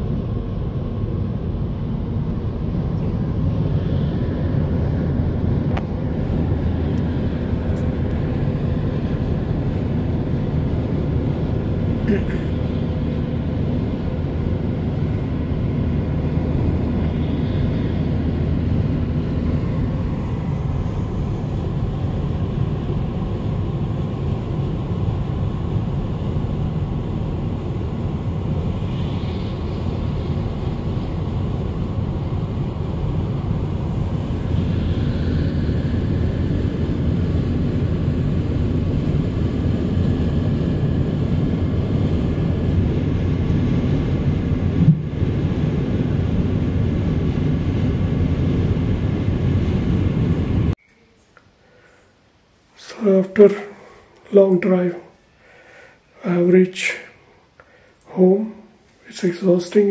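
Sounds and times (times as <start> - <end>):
car road noise: 0.0 - 38.9.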